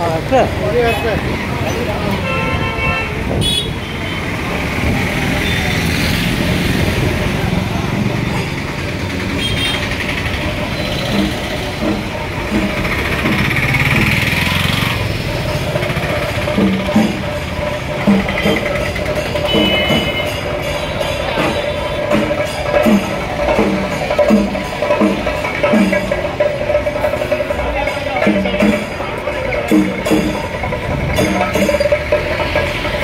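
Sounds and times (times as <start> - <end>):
crowd chatter: 0.0 - 33.0
motorbike engines: 0.0 - 33.0
traffic: 0.0 - 33.0.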